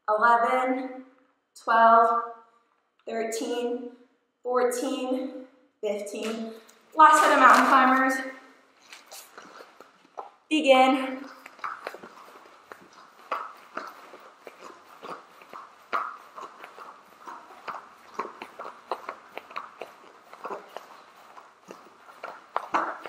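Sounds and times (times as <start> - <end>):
feet thudding on exercise mats: 6.2 - 10.4, 11.3 - 23.0.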